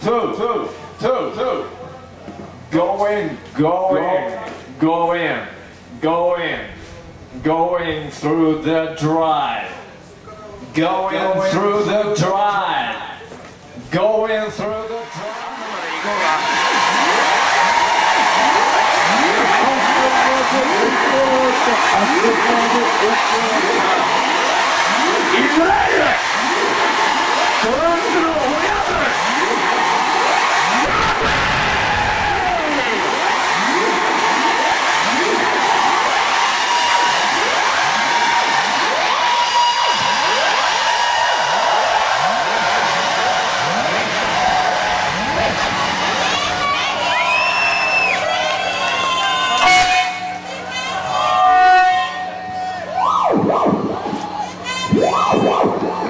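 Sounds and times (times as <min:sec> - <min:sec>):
electronic noise wash: 0:14.3 - 0:48.3, 0:51.1 - 0:56.0
sliding falling synth tones: 0:16.5 - 0:46.2, 0:53.0 - 0:56.0.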